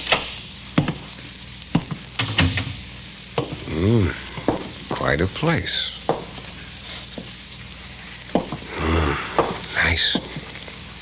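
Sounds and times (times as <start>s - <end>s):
crackle and hiss of old recording: 0.0s - 11.0s
dialogue: 3.4s - 10.6s.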